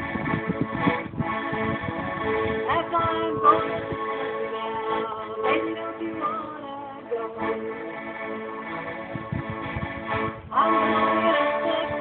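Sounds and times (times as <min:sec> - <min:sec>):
piano accordion playing: 0:00.0 - 0:12.0
woman singing wordless notes: 0:02.6 - 0:08.0, 0:10.4 - 0:12.0.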